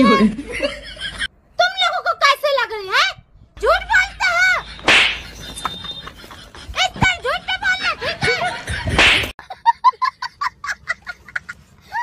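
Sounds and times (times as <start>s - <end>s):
girl's high-pitched voice: 0.0s - 0.4s
sharp swish or crack: 4.9s - 5.3s, 9.0s - 9.3s.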